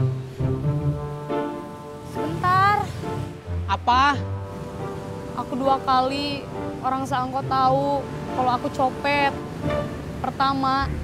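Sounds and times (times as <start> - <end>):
low bowed-string notes: 0.0 - 11.0.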